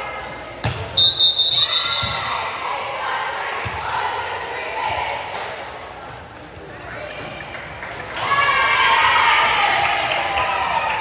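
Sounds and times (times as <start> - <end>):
voices echoing in a gym: 0.0 - 11.0
referee's whistle blast: 1.0 - 2.3.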